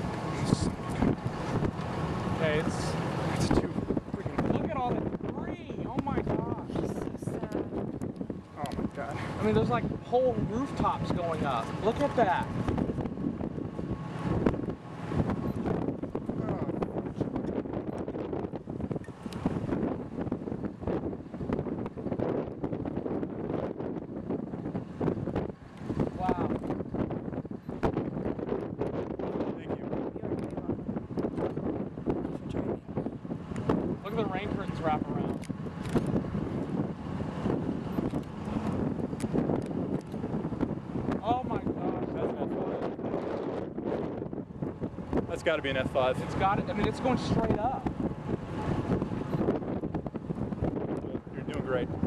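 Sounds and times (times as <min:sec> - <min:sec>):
pickup truck passing: 0:00.0 - 0:05.2
gusty wind buffeting microphone: 0:00.0 - 0:52.0
road traffic passing: 0:00.0 - 0:52.0.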